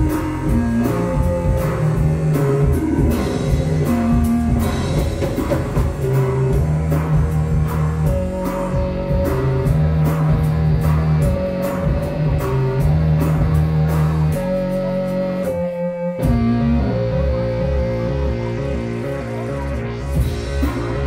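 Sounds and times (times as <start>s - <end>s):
synth bass: 0.0s - 21.0s.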